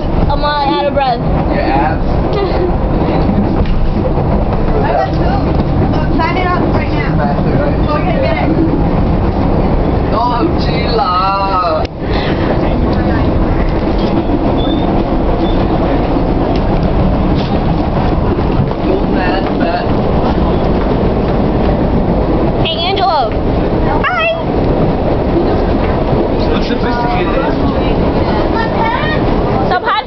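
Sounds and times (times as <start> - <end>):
subway train low rumble: 0.0 - 30.0.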